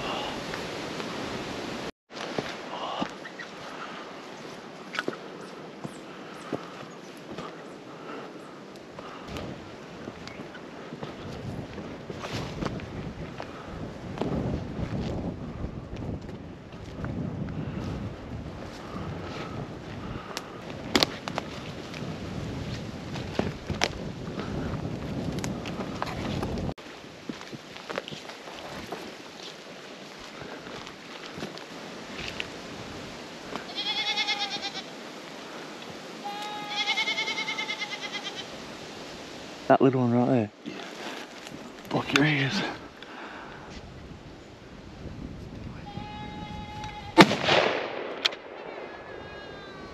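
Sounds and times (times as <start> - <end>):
footsteps through dry grass: 2.1 - 39.6, 40.6 - 45.5
goat bleating: 33.6 - 34.9, 36.2 - 38.5, 45.8 - 47.2, 48.9 - 49.9.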